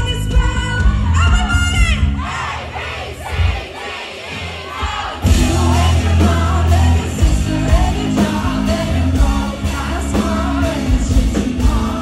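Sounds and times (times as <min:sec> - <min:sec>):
live pop-rock band and singer: 0:00.0 - 0:02.6, 0:04.5 - 0:12.0
audience singing and shouting: 0:00.0 - 0:12.0.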